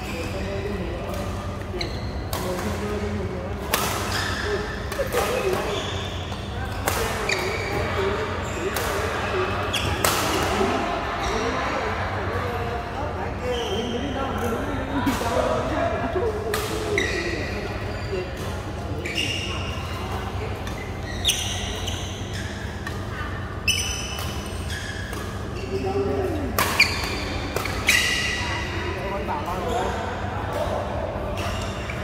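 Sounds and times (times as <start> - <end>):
players talking: 0.0 - 32.0
racket hitting shuttlecock: 9.9 - 10.6.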